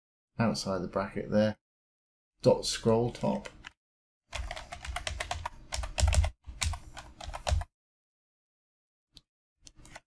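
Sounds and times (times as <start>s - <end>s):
keyboard typing: 3.1s - 7.7s.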